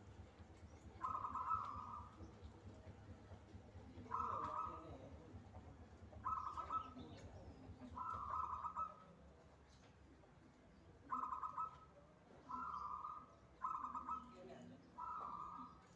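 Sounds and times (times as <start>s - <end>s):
dove cooing: 1.0s - 2.2s, 4.0s - 5.6s, 6.2s - 9.2s, 11.1s - 15.9s.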